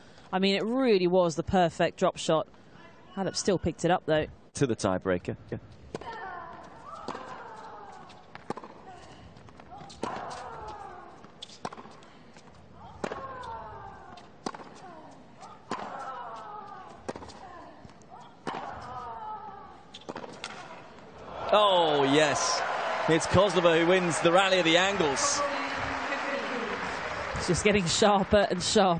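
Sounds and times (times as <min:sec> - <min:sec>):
racket striking tennis ball: 0:14.4 - 0:14.8, 0:18.4 - 0:18.9, 0:20.0 - 0:20.7.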